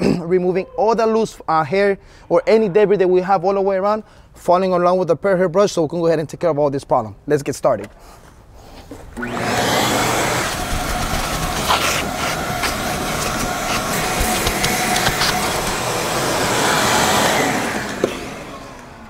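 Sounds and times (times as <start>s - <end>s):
vacuum cleaner running: 9.1s - 19.0s
clicks: 12.6s - 15.9s.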